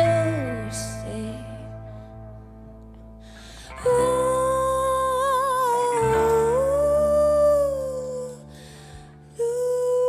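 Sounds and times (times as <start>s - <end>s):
woman singing a long note: 0.0s - 2.0s, 3.8s - 8.6s, 9.3s - 10.0s.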